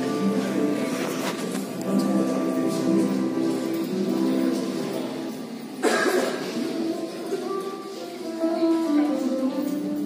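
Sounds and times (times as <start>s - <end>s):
acoustic guitars played softly: 0.0s - 10.0s.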